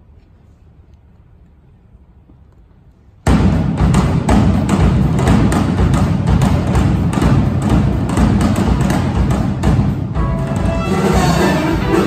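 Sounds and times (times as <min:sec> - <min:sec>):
big band playing swing: 0:03.3 - 0:12.0.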